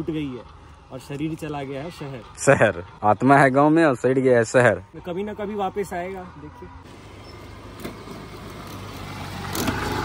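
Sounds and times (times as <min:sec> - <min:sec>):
motor scooter passing by: 0:06.3 - 0:10.0.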